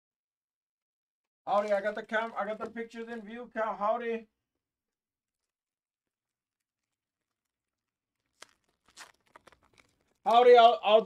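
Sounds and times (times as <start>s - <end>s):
faint clicks and rustles: 4.9s - 10.5s.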